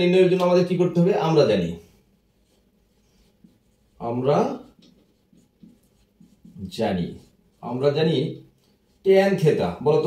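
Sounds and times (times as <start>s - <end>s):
marker pen writing on whiteboard: 0.0s - 9.9s.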